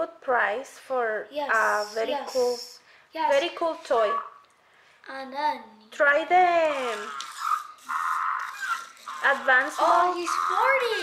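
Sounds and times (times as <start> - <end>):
buzzy toy sound: 1.5 - 4.4, 6.5 - 11.0
electronic chirp: 3.8 - 4.4, 7.0 - 11.0.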